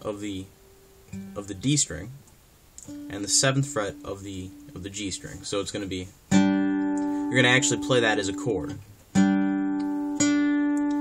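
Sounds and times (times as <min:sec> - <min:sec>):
acoustic guitar power chord: 0:06.3 - 0:08.5, 0:09.1 - 0:11.0.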